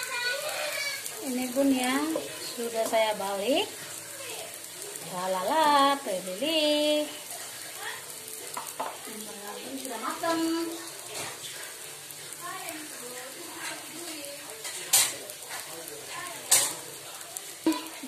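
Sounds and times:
cakes sizzling in a frying pan: 0.0 - 18.0.

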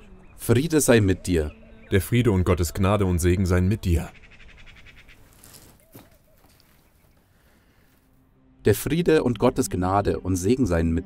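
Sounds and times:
birds chirping: 0.0 - 8.1.

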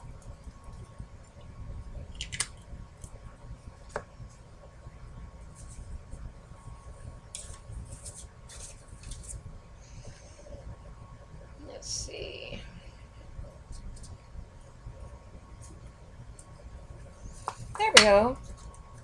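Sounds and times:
low steady hum: 0.0 - 19.0
soft murmured sound: 0.0 - 19.0
paper rustling and scraping: 7.4 - 9.4.

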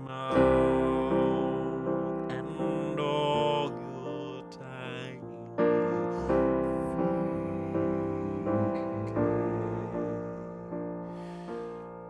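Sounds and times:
piano playing slow chords: 0.0 - 12.0.

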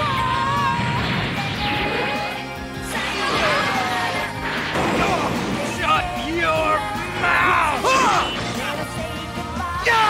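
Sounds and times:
dramatic music: 0.0 - 10.0
crash and impact effects: 3.2 - 5.8.

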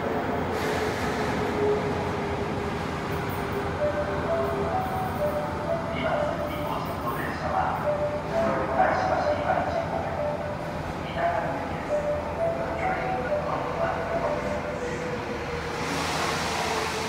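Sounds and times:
subway train rumble: 0.0 - 17.0
platform announcement: 3.8 - 15.4.

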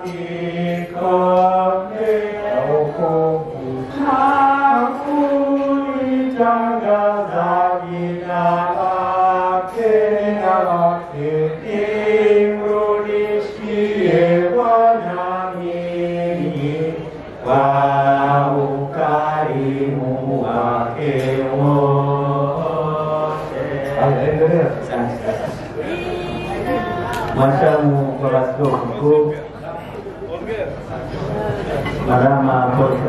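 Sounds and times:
two people singing into microphones: 0.0 - 28.0.

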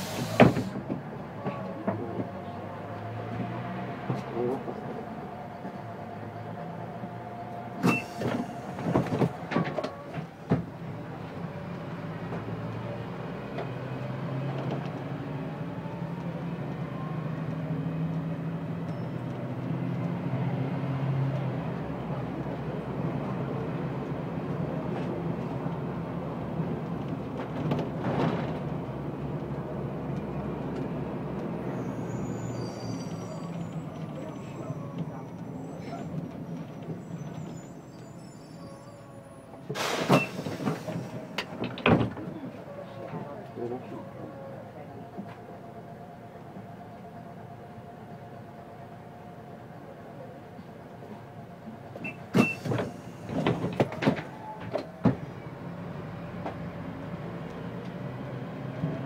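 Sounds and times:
bus engine hum: 0.0 - 59.0
faint high squeaks: 31.6 - 41.2.

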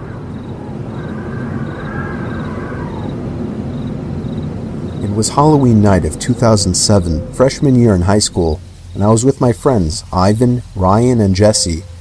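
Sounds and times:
crickets chirping: 0.0 - 12.0
steady low rumble: 0.0 - 12.0.

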